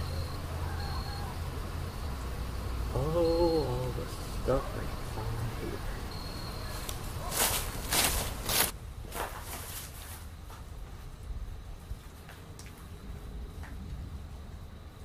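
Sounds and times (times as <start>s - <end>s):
low steady rumble: 0.0s - 12.1s, 12.8s - 15.0s
footsteps scuffing: 6.7s - 11.1s.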